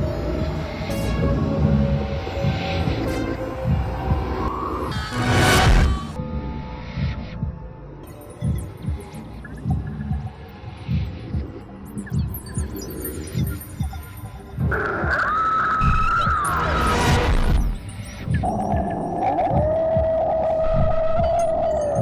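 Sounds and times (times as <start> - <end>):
low heartbeat-like pulse: 1.3 - 4.7, 6.8 - 15.2, 17.3 - 22.0.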